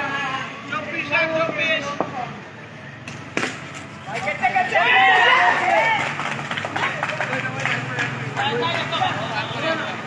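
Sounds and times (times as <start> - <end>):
street background noise: 0.0 - 10.0.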